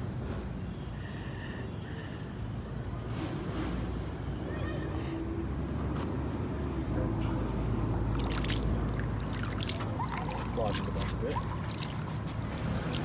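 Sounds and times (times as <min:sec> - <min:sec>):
river water sloshing against stone: 0:08.0 - 0:13.0.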